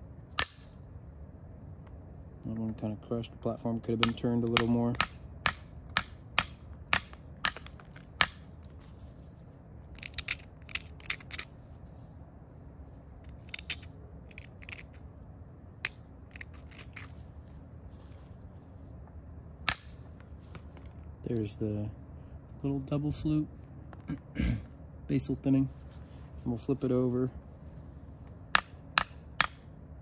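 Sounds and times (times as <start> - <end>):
stone abrader scratching: 7.6 - 12.0, 13.2 - 15.1, 16.2 - 18.5.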